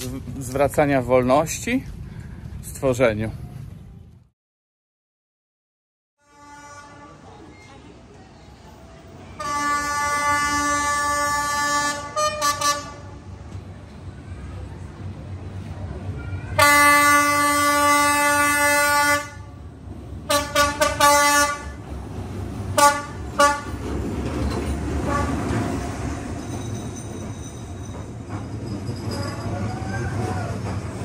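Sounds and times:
train passing rumble: 0.0s - 4.3s, 6.3s - 31.0s
diesel locomotive horn: 6.2s - 7.3s, 9.3s - 13.3s, 16.5s - 19.6s, 20.2s - 21.8s, 22.7s - 23.8s, 25.0s - 25.5s.

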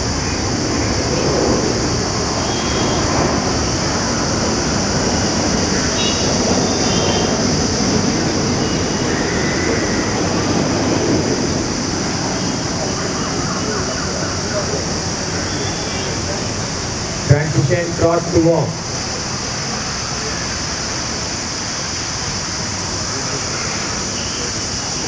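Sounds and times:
steady rushing noise: 0.0s - 25.0s.

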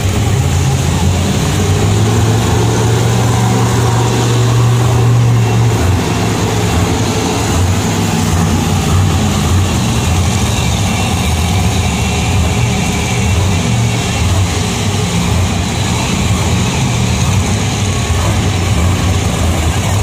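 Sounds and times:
monster truck engines droning: 0.0s - 20.0s.

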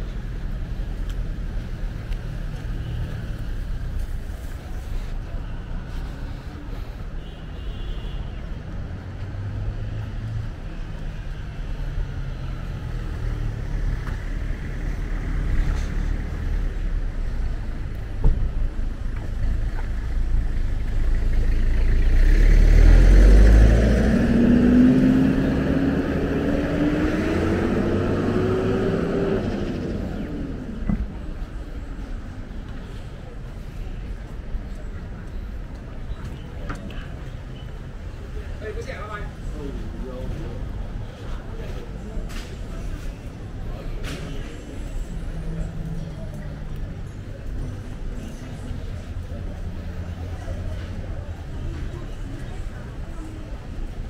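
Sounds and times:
road traffic rumble: 0.0s - 54.0s
vehicle accelerating past: 21.9s - 30.8s.

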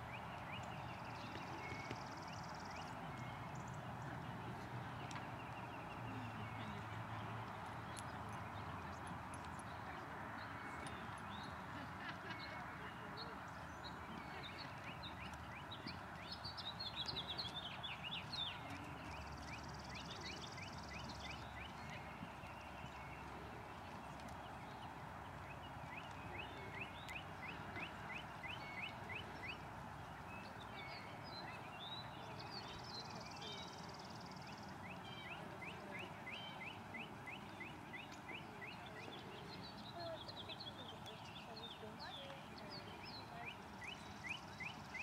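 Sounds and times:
faint outdoor background noise: 0.0s - 45.0s.

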